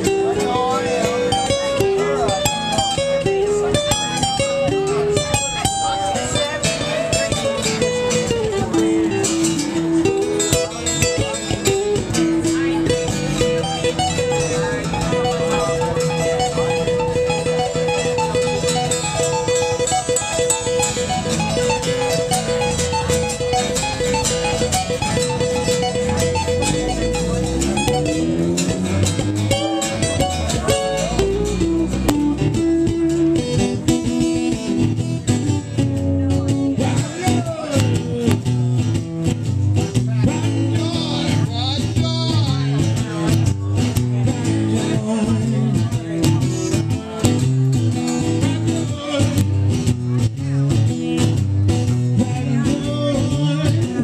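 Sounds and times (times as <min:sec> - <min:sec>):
acoustic guitars playing blues: 0:00.0 - 0:54.0.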